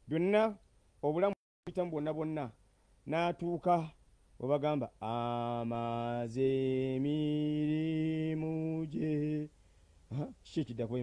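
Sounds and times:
man chanting in low voice: 0:00.0 - 0:11.0
breaths: 0:02.6 - 0:03.0, 0:09.5 - 0:10.1.

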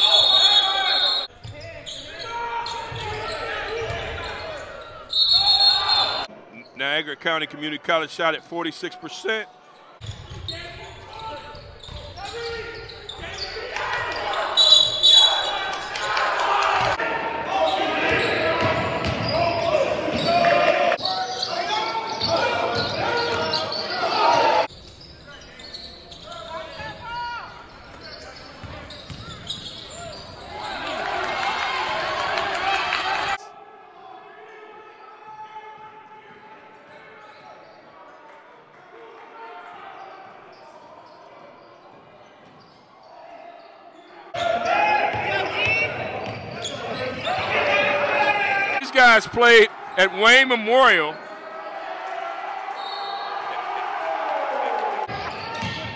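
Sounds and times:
voices echoing in hall: 0:00.0 - 0:55.9.

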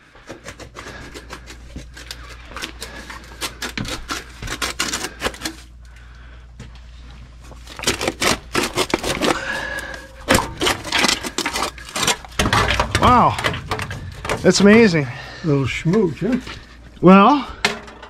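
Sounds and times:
low steady hum: 0:00.0 - 0:18.0.

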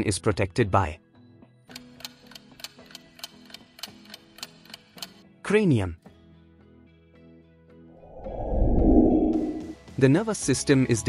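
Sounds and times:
soft background music: 0:00.0 - 0:11.0
clock tick-tock: 0:01.7 - 0:05.2.

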